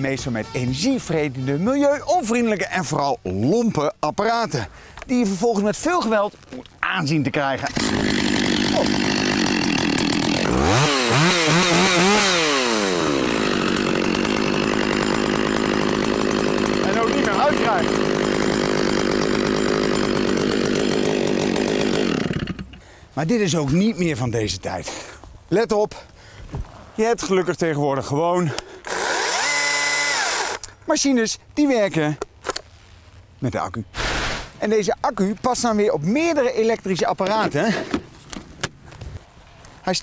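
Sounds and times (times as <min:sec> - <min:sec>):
chainsaw revving: 0:07.6 - 0:22.8, 0:28.8 - 0:30.6.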